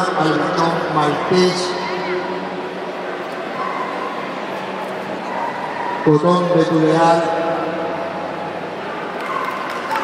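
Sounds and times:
hubbub of a large hall: 0.0s - 10.0s.

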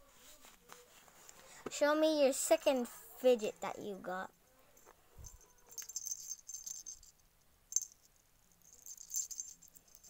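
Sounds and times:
small toys rattling and clinking: 4.8s - 10.0s.

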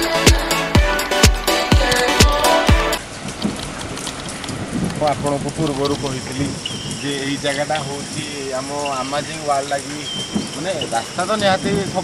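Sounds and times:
water rushing over rocks: 0.0s - 12.0s.

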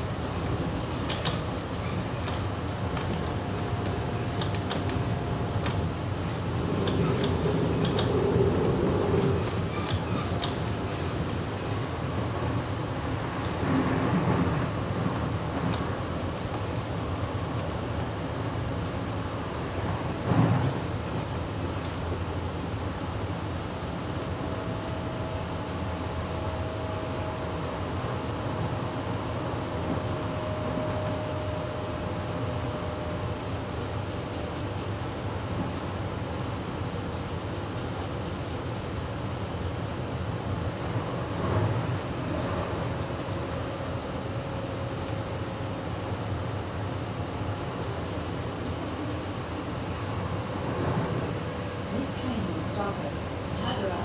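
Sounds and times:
train running noise: 0.0s - 54.0s.

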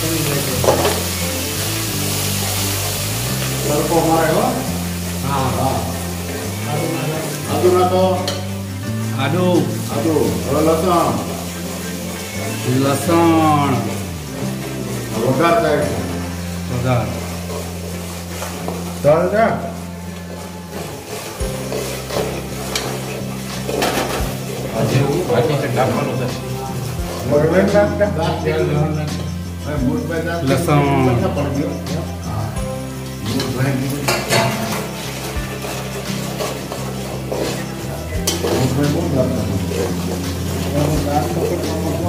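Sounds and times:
background music: 0.0s - 42.0s
oil sizzling: 0.0s - 42.0s
ladle stirring in pot: 0.5s - 13.2s, 13.8s - 27.3s, 33.0s - 42.0s.

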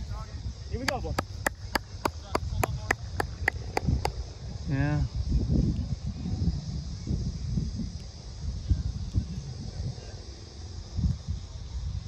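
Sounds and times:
rhythmic hand clapping: 0.8s - 4.2s.

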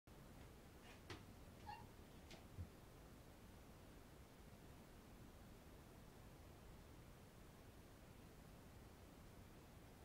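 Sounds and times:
cat meowing: 1.6s - 1.9s.

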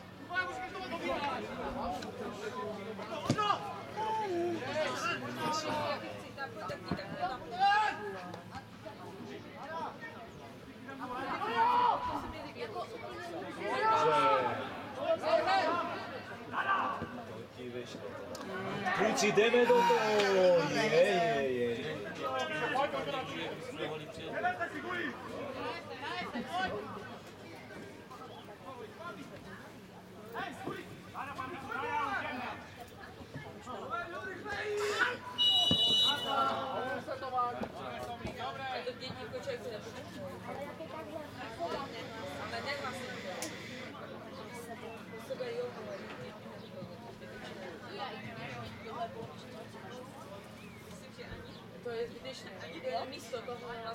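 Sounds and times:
players calling out: 18.4s - 23.5s, 30.1s - 39.9s
men shouting: 18.8s - 21.4s
referee's whistle blast: 34.8s - 36.5s.

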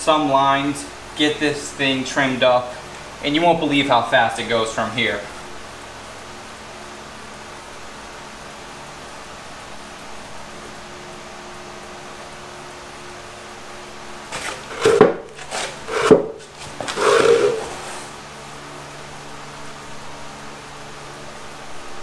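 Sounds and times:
knocks and rustles: 14.3s - 18.2s.

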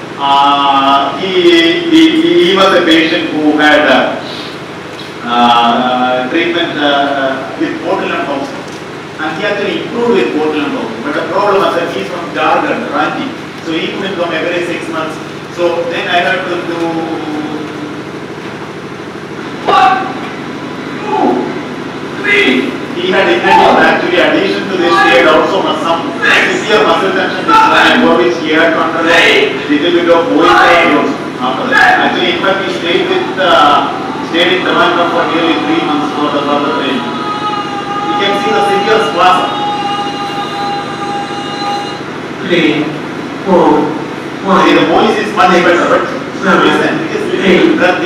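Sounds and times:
man's voice: 0.0s - 4.4s, 22.2s - 48.0s
steady hum: 0.0s - 48.0s
electronic whine of held tones: 19.7s - 43.0s.

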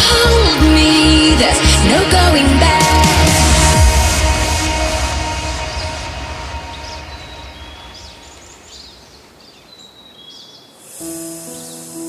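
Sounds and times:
electronic trance music: 0.0s - 8.8s
hissing noise: 2.5s - 9.4s, 10.8s - 12.0s.

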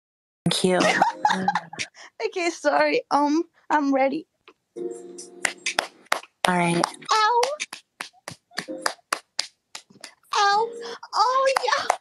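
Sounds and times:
sharp hand slaps: 5.4s - 10.2s, 11.5s - 12.0s.

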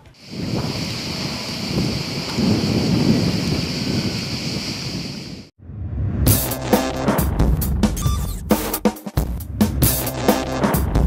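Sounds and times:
heavy rain hissing: 0.0s - 5.5s
low rumbling thunder: 0.3s - 6.0s.

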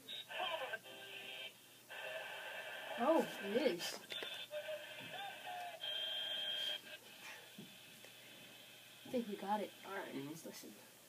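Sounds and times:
wavering low phone tone: 4.3s - 7.0s.

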